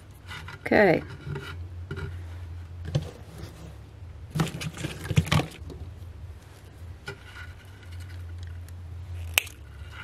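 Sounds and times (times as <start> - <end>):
low steady hum: 0.0 - 10.0
knocks and rustles of handling: 0.1 - 10.0.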